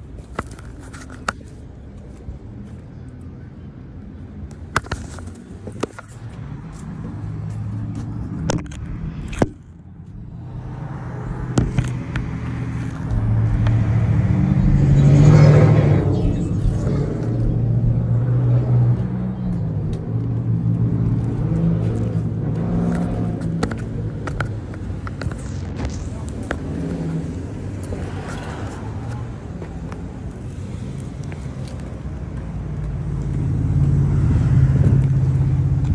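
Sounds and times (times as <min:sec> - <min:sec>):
vehicle passing: 0:05.3 - 0:35.9.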